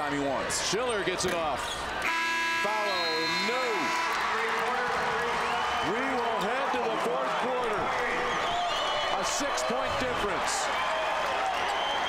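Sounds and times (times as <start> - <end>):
electronic buzzer horn: 2.0 - 4.6.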